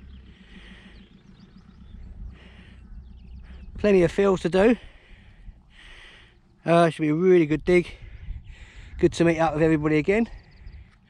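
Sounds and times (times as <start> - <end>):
small birds chirping: 0.0 - 11.0
steady low rumble: 0.0 - 11.0.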